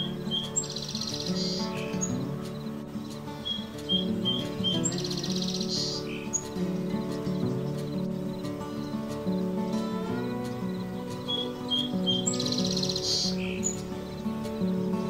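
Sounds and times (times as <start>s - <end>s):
bird calling with buzzy rattle: 0.0s - 14.8s
background music: 0.0s - 15.0s.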